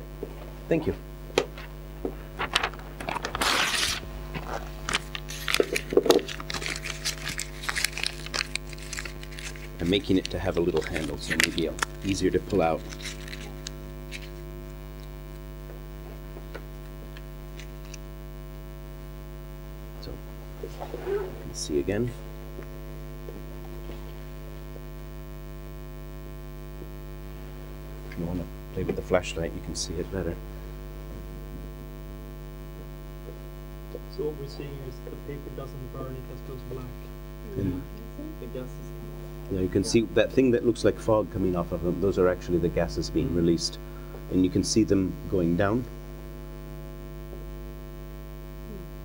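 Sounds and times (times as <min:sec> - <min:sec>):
low electrical hum: 0:00.0 - 0:49.0
paper crinkling: 0:02.4 - 0:15.4
paper tearing: 0:02.5 - 0:14.4.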